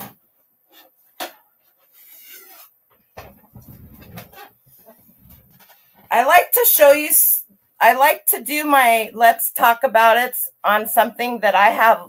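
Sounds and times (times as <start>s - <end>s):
objects rustling and shuffling: 0.7s - 6.1s.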